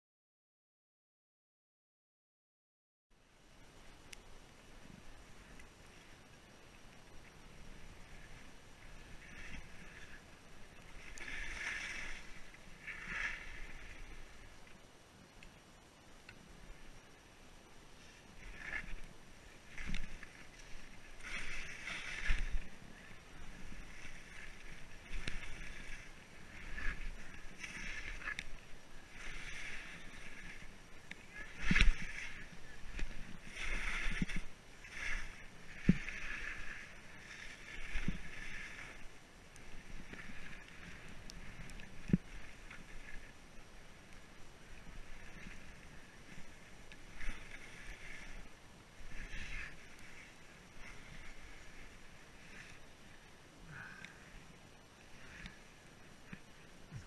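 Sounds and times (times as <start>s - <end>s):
skis swishing through snow: 7.3s - 14.6s, 17.9s - 53.3s.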